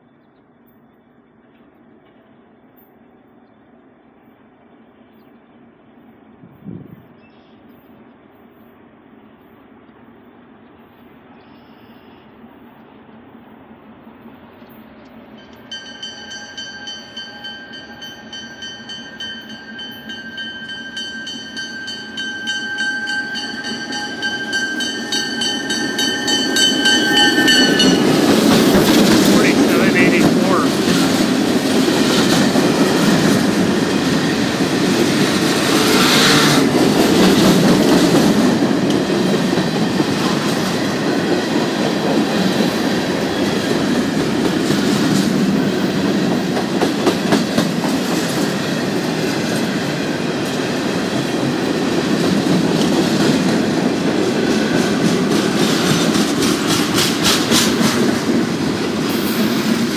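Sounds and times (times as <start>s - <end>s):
diesel locomotives passing: 1.2s - 59.9s.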